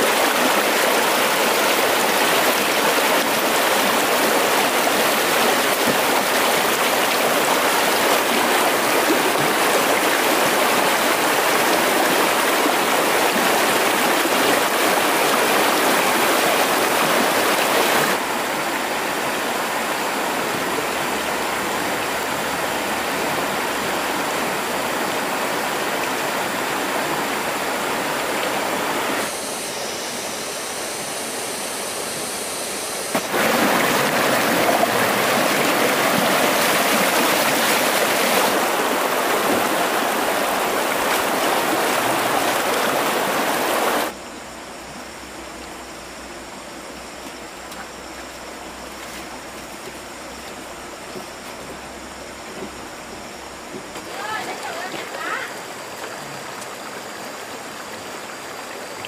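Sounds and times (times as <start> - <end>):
stream rushing over rocks: 0.0 - 44.6, 53.6 - 59.0.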